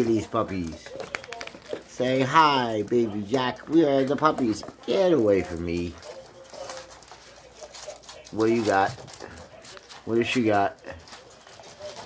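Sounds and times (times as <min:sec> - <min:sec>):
dogs scuffling on wooden floor: 0:00.0 - 0:12.0
faint puppy vocal sounds: 0:00.0 - 0:12.0.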